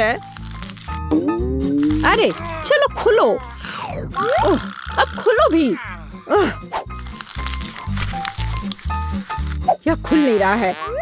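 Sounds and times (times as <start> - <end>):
plastic wrapper crinkling: 0.0 - 1.1, 1.8 - 2.8, 6.9 - 9.8
background music with beat: 1.0 - 2.1.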